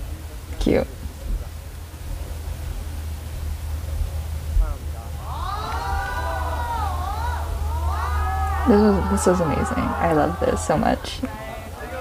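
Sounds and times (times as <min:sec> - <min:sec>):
young men calling out together: 0:05.2 - 0:12.0.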